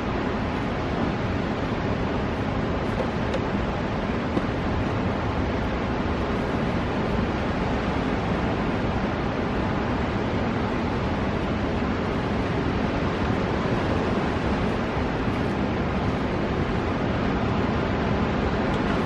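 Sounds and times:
ocean surf breaking: 0.0 - 19.0
wind: 0.0 - 19.0.

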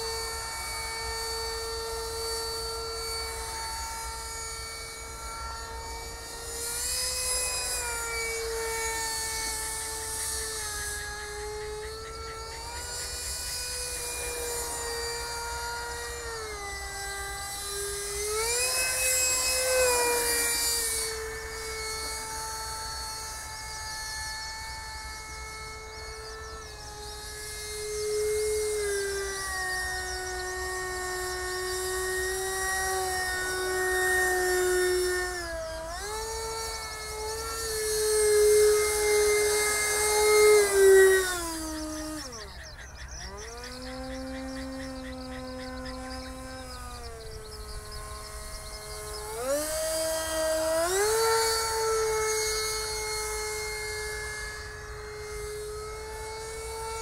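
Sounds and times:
electric ducted fan whining: 0.0 - 57.0.

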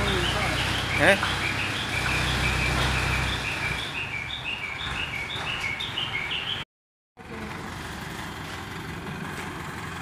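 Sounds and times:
diesel engine running low: 0.0 - 6.6, 7.2 - 10.0.

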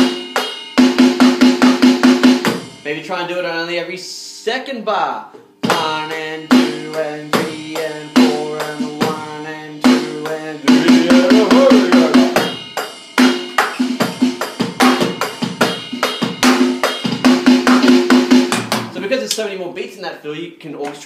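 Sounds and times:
electronic drum kit beat: 0.0 - 3.0, 5.4 - 19.2
rapid drum fill: 0.0 - 3.0, 5.6 - 19.1.

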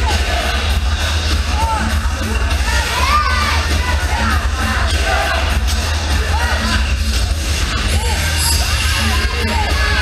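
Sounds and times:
crowd shouting and cheering: 0.0 - 10.0
music playing: 0.0 - 10.0.

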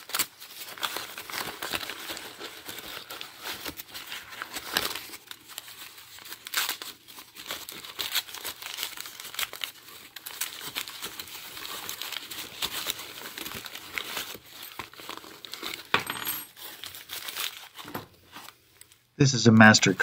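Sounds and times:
paper crinkling and rustling: 0.0 - 19.1.

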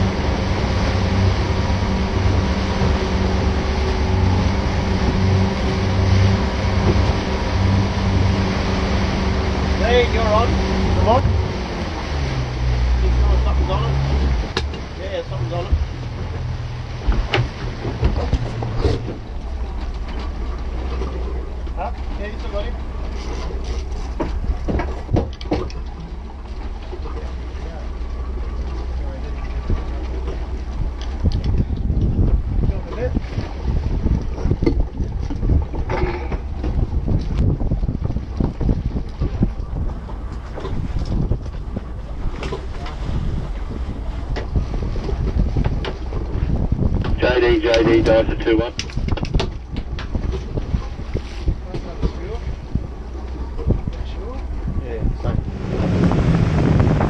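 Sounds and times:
outboard motor humming: 0.0 - 57.0
water noise: 0.0 - 57.0
wind noise on microphone: 30.6 - 57.0.

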